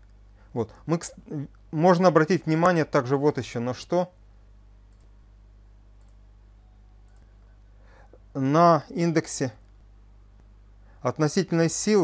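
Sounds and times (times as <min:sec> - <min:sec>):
low electrical hum: 0:00.0 - 0:12.0
faint clicks: 0:04.9 - 0:05.2, 0:06.0 - 0:06.2.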